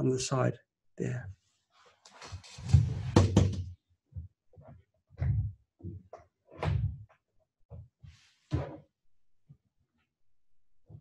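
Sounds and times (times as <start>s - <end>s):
knocks and thuds of handling equipment: 2.7s - 3.7s.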